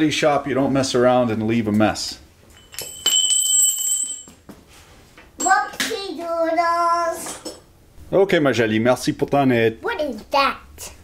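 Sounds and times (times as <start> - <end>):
metal hand tools clinking: 2.5 - 4.4
metal piece ringing: 2.5 - 4.4.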